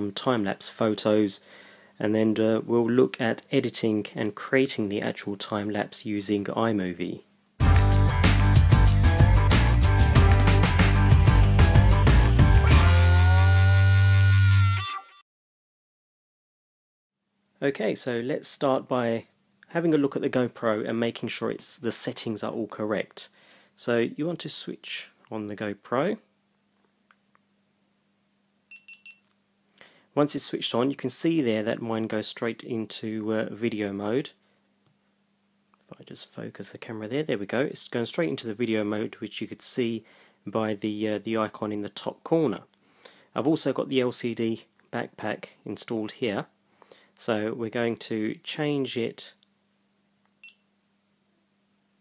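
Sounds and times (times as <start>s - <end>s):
camera electronic beeps: 28.7s - 29.2s.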